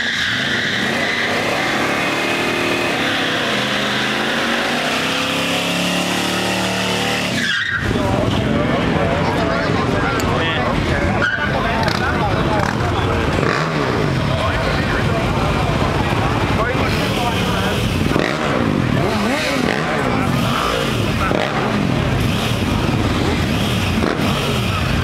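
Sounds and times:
motorcycle engine revving: 0.0s - 7.4s, 11.8s - 25.0s.

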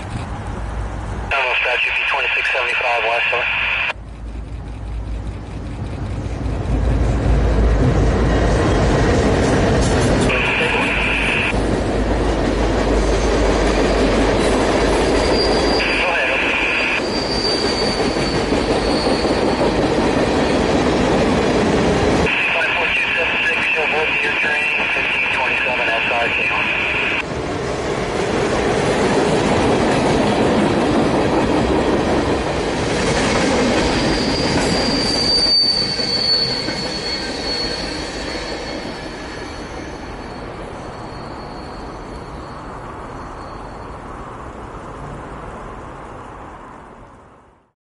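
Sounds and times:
diesel locomotives rumbling: 0.0s - 47.6s
train wheels rolling: 3.9s - 22.3s, 27.3s - 46.8s
high-pitched wheel squeal: 14.8s - 20.7s, 33.8s - 44.3s.

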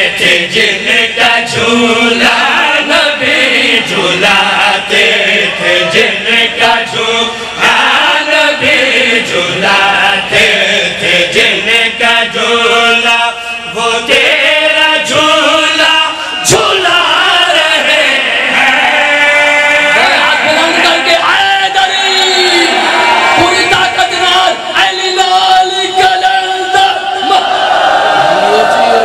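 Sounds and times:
men chanting through microphones: 0.0s - 29.0s.

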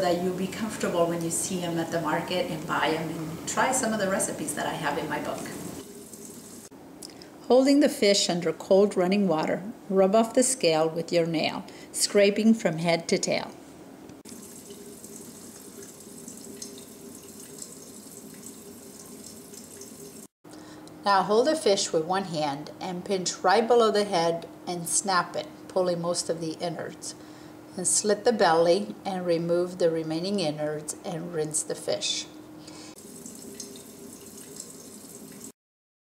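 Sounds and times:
tap water splashing in sink: 14.3s - 20.3s, 33.0s - 35.5s.

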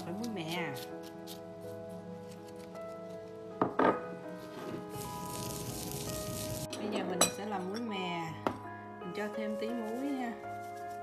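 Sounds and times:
background music: 0.0s - 11.0s
hissing rustle of seeds: 4.8s - 6.7s, 9.6s - 11.0s.

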